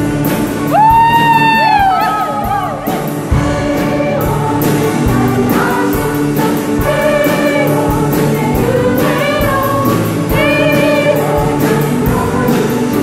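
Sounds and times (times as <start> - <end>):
keyboard chords: 0.0 - 13.0
steady drum beat: 0.0 - 13.0
women's choir singing: 1.7 - 13.0.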